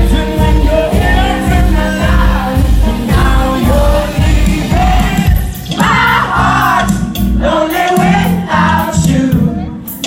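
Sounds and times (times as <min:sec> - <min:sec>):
voices singing together: 0:00.0 - 0:09.8
bass guitar: 0:00.0 - 0:10.0
drums: 0:00.0 - 0:10.0.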